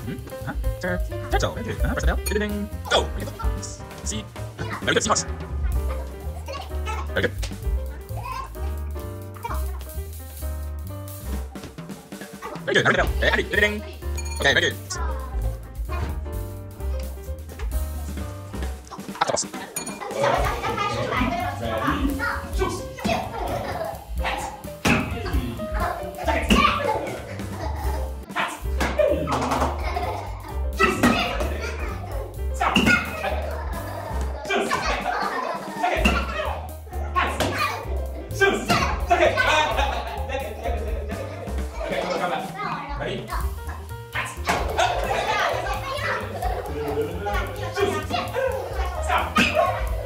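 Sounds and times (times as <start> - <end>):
background music: 0.0 - 50.0
young children's voices: 5.5 - 10.1, 14.8 - 16.3, 29.8 - 39.9, 41.6 - 43.9, 44.5 - 50.0.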